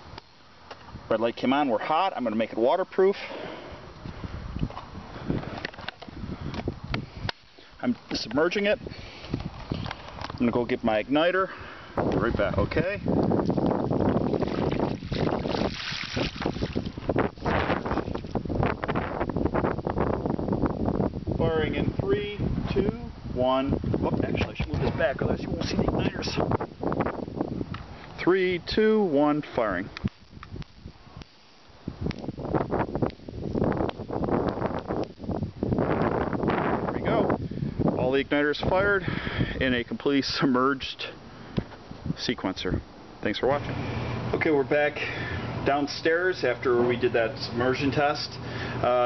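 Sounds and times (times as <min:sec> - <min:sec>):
wind rumbling on microphone: 0:00.0 - 0:01.3, 0:03.4 - 0:40.2, 0:41.4 - 0:49.0
water pouring and splashing: 0:14.1 - 0:18.3.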